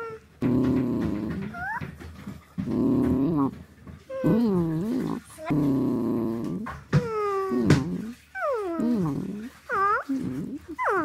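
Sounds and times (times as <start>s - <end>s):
dog grumbling whines: 0.0s - 1.9s, 2.6s - 11.0s.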